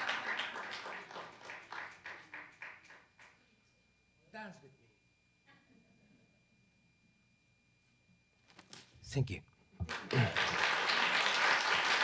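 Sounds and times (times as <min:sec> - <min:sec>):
audience applauding: 0:00.0 - 0:03.3, 0:09.8 - 0:12.0.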